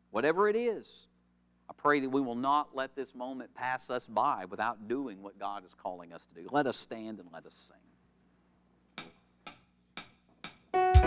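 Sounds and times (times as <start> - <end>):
drumstick count-in clicks: 9.0 - 10.7
band playing a song: 10.8 - 11.0.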